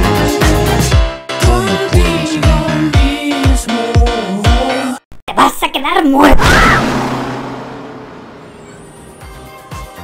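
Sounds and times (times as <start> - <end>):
road noise rushing: 6.8 - 9.5
bus passing: 6.9 - 10.0.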